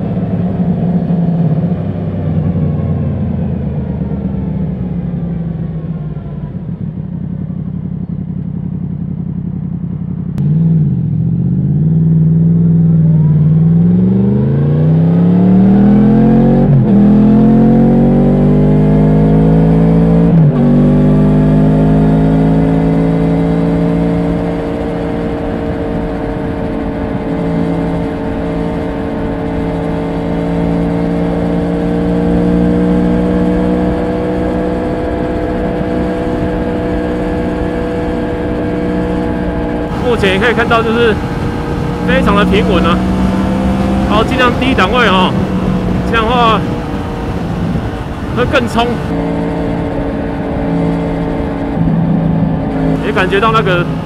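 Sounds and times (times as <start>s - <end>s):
motorcycle accelerating through gears: 0.0s - 54.0s
wind and road noise: 0.0s - 54.0s.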